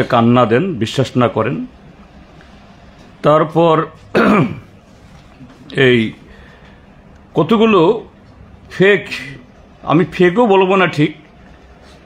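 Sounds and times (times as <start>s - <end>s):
man speaking: 0.0s - 1.8s, 3.2s - 4.6s, 5.5s - 6.3s, 7.3s - 11.3s
man clearing his throat: 4.1s - 4.8s.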